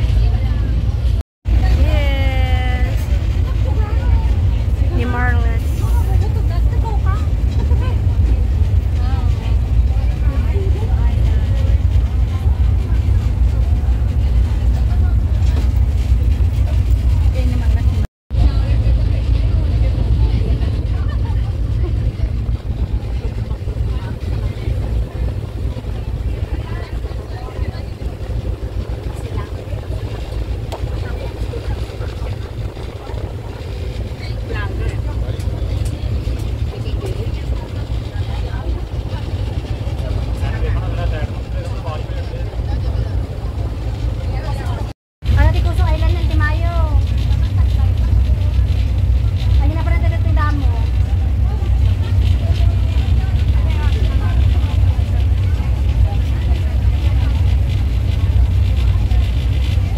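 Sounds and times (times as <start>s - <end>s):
faint voices: 0.0s - 59.9s
ferry engine rumble: 0.0s - 59.9s.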